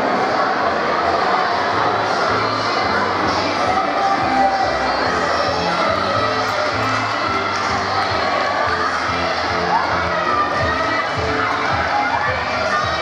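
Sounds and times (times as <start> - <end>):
crowd cheering and shouting: 0.0 - 13.0
music playing: 0.0 - 13.0.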